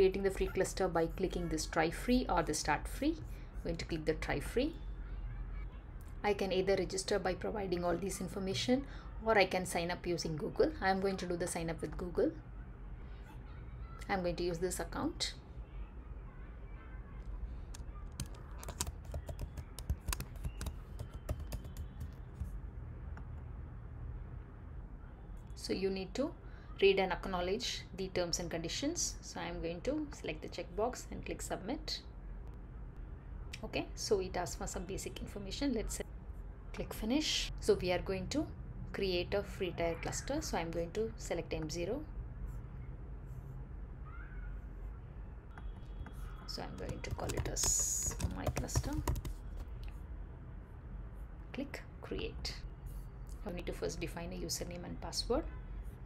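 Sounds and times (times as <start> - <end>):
low background hum: 0.0 - 56.0.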